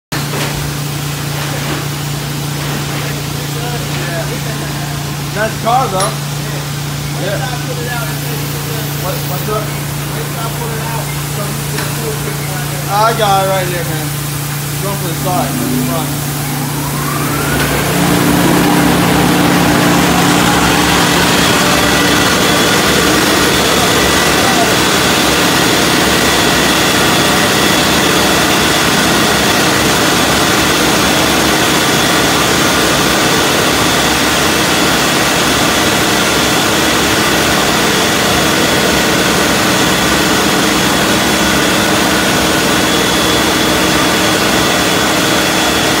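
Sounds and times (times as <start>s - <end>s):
air-dryer blowers rushing: 0.2s - 46.0s.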